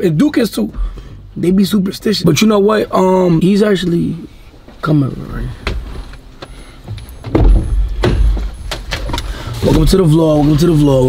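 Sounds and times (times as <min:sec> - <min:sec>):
car door thump and rumble: 0:05.6 - 0:09.9.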